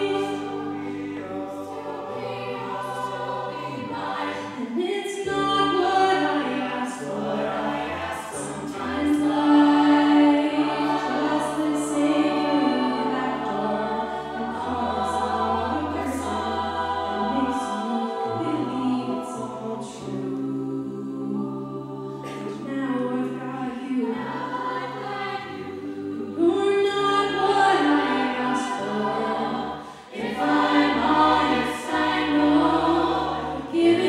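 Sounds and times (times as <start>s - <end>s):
a cappella backing harmonies: 0.0s - 34.0s.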